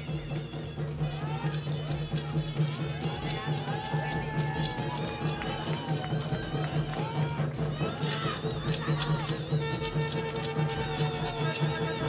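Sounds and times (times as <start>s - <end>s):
rhythmic beat: 0.0s - 12.0s
rapid sharp clicks: 1.4s - 6.8s, 7.6s - 12.0s.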